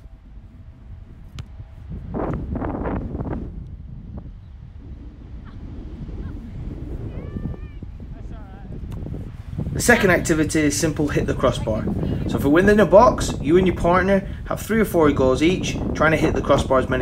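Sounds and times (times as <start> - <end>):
wind buffeting microphone: 0.0 - 17.0
soccer ball being kicked: 1.1 - 2.9.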